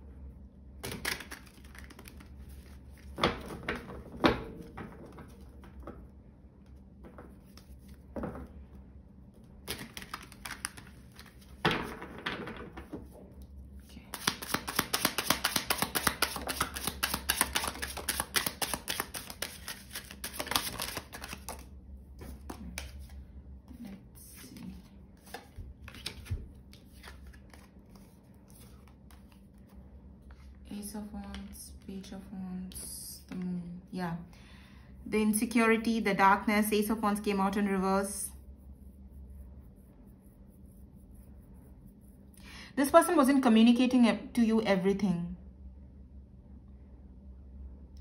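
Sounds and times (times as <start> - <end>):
cards tapping and slapping: 0.8 - 6.0, 9.6 - 12.9, 14.1 - 23.2, 25.2 - 29.7
cards clicking from shuffling: 9.7 - 11.4, 14.1 - 21.6.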